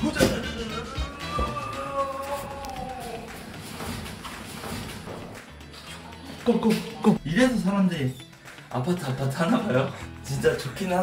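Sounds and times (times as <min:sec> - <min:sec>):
footsteps on hard floor: 0:03.5 - 0:05.4.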